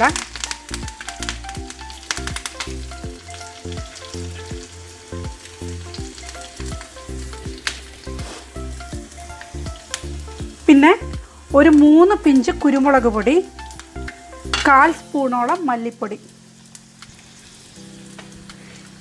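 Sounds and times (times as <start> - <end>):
food sizzling in hot oil: 0.0 - 19.0
leaves crackling in oil: 0.0 - 19.0.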